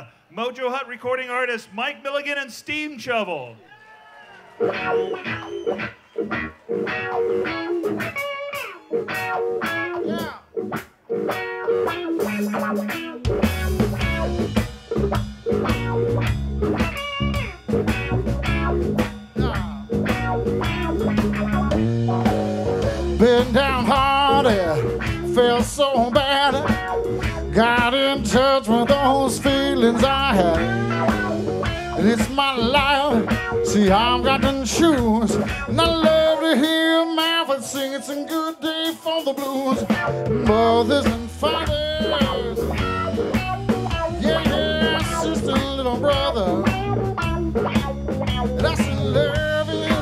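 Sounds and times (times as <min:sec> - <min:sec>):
drums: 0:04.5 - 0:50.0
bass guitar: 0:04.6 - 0:38.0, 0:38.8 - 0:50.0
electric guitar bent notes: 0:04.6 - 0:50.0.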